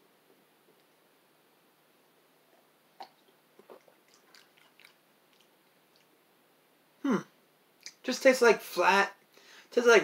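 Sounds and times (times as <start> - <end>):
swallows and lip smacks: 3.0 - 6.1.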